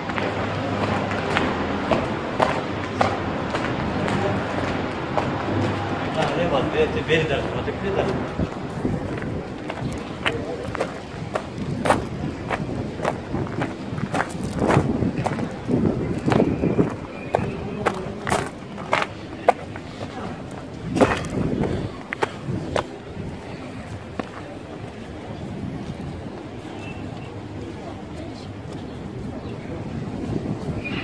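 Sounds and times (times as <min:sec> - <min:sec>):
footsteps on sandy dirt path: 0:00.0 - 0:27.2
people talking: 0:00.0 - 0:31.0.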